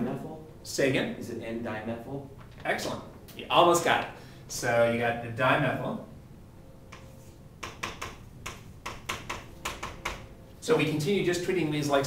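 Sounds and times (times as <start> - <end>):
chalk tapping and scratching on chalkboard: 6.9 - 10.2.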